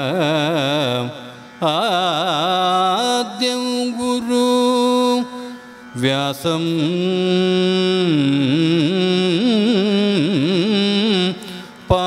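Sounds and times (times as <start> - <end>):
person singing devotional chant: 0.0 - 12.0.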